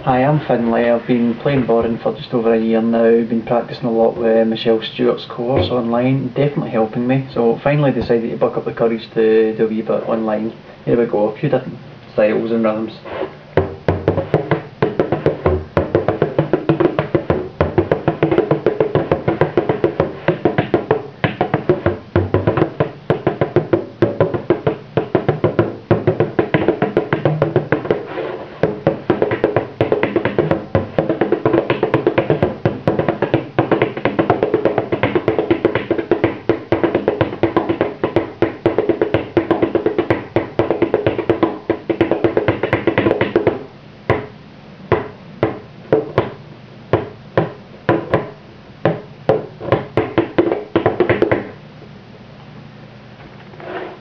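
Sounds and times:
frame drum played with a tipper: 13.6s - 43.4s.

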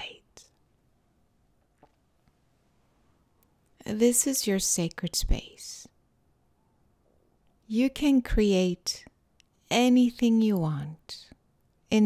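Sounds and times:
woman speaking softly: 0.0s - 0.5s, 3.8s - 5.9s, 9.7s - 12.0s.

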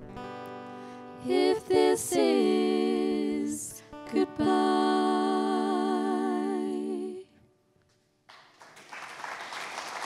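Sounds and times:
female voices singing in harmony: 1.2s - 7.5s.

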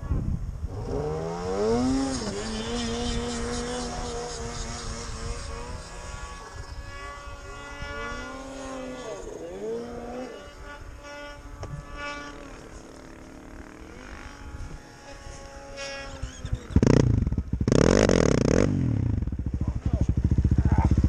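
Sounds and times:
snowmobile engine revving: 0.0s - 21.0s.

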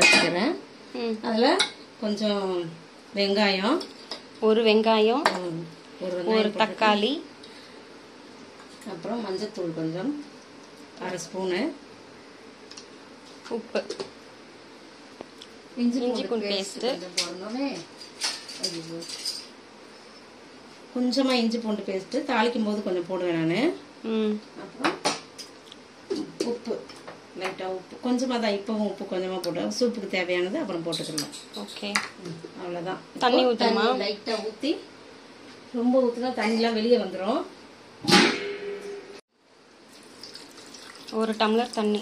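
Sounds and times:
woman speaking: 0.0s - 7.3s, 8.8s - 10.3s, 11.0s - 11.8s, 15.8s - 17.9s, 21.0s - 25.0s, 26.3s - 34.9s, 35.7s - 37.5s, 41.1s - 42.0s
water pouring into metal pot: 39.9s - 42.0s.

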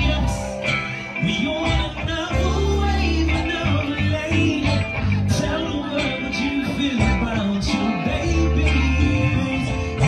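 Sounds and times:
guitar music: 0.0s - 10.0s
man singing into a microphone: 0.0s - 10.0s.

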